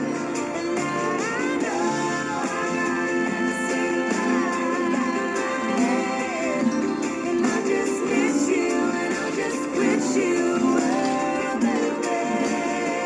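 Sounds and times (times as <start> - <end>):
acoustic guitar: 0.0 - 13.0
man singing: 0.0 - 13.0.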